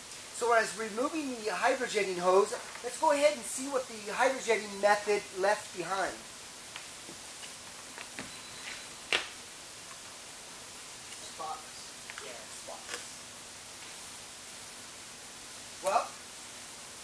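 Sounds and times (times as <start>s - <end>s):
room tone hiss: 0.0s - 17.0s.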